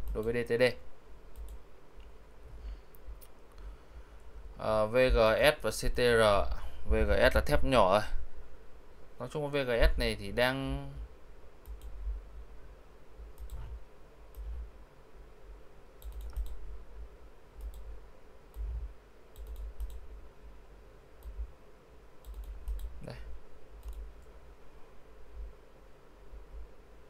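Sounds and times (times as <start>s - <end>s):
computer mouse clicking: 1.3s - 1.6s, 11.6s - 12.0s, 13.4s - 14.5s, 16.0s - 16.6s, 17.6s - 17.9s, 19.3s - 20.1s, 21.2s - 21.4s, 22.2s - 23.1s, 23.8s - 24.3s
faint low thuds: 18.6s - 19.0s.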